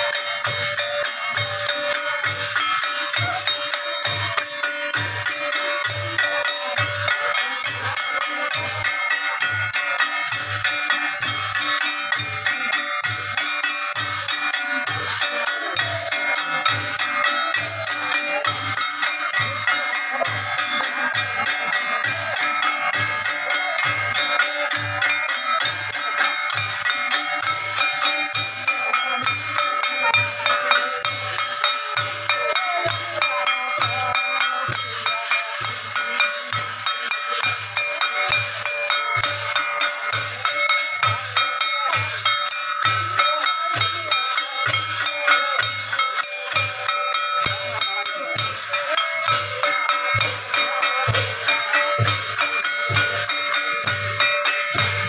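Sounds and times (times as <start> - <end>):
brass cymbals clashing: 0.0 - 55.0
hand drums beating: 0.0 - 55.0
metallic jingling percussion: 0.0 - 55.0.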